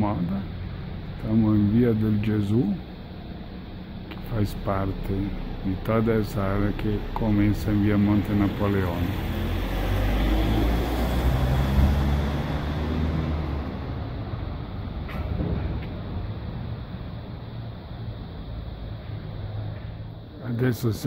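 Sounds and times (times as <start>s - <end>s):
street traffic rumble: 0.0s - 21.0s.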